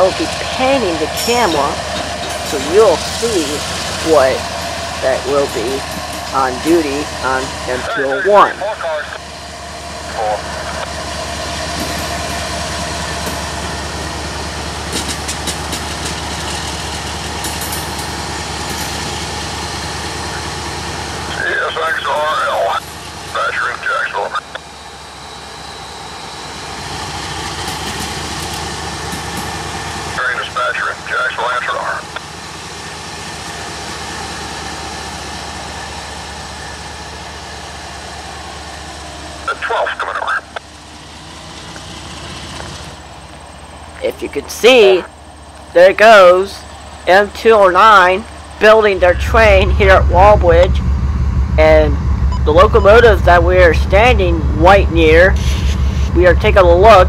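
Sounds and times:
bursts of voices: 0:00.0 - 0:09.3, 0:10.0 - 0:10.9, 0:21.3 - 0:24.6, 0:30.2 - 0:32.2, 0:39.4 - 0:40.6, 0:45.7 - 0:50.8, 0:51.6 - 0:57.0
diesel locomotive rumbling: 0:00.0 - 0:57.0.

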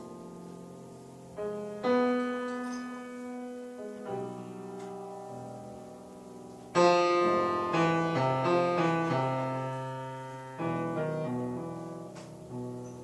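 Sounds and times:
grand piano jazz chords: 0:00.0 - 0:13.0.

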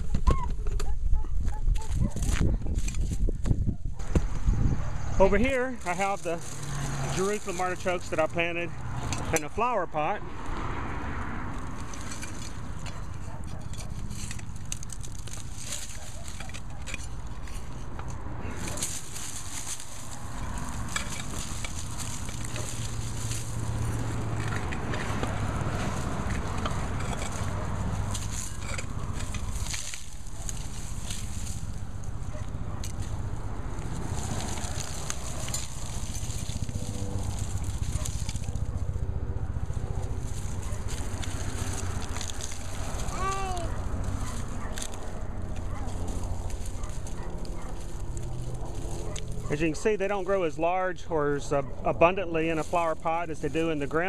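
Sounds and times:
dry stalks and leaves crackling: 0:00.0 - 0:54.0
soil crumbling: 0:05.2 - 0:54.0.

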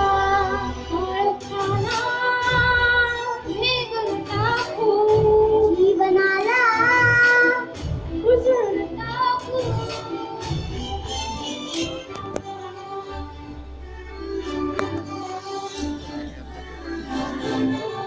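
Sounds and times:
instrumental accompaniment with low beat: 0:03.9 - 0:18.0.

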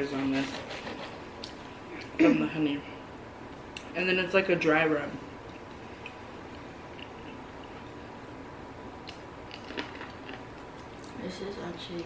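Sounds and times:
quiet chewing: 0:05.4 - 0:08.4, 0:09.0 - 0:11.2.

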